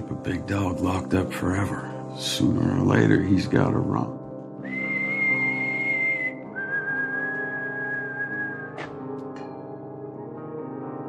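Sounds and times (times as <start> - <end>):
sustained musical backing: 0.0 - 11.0
person whistling long notes: 4.6 - 8.9.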